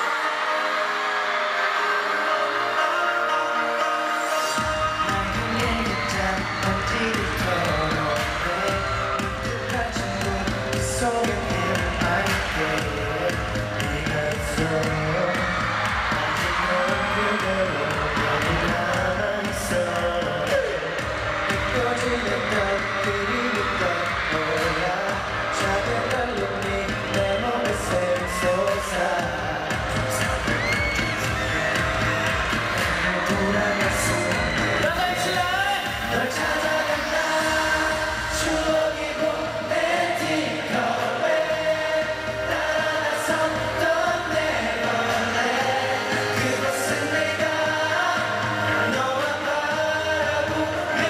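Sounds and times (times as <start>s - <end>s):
audience cheering and screaming: 0.0s - 51.0s
men singing over backing track: 0.0s - 51.0s.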